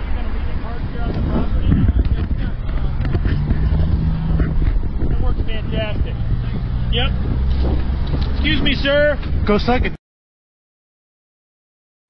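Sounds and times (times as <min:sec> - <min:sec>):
car engine running: 0:01.5 - 0:09.6.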